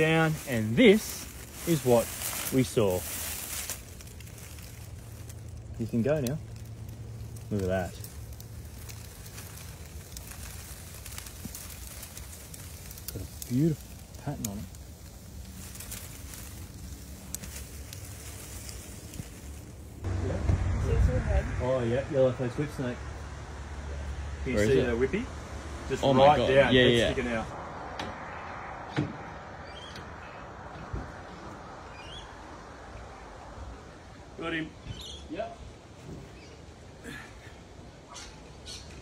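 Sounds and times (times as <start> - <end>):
man speaking: 0.0 - 3.1, 24.4 - 25.3
rustling of cloth bag and leaves: 0.0 - 25.2
steady low rumble: 0.0 - 26.1.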